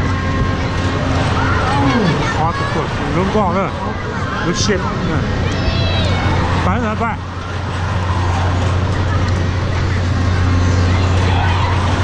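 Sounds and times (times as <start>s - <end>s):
faint voices: 0.0s - 12.0s
low machine hum: 0.0s - 12.0s.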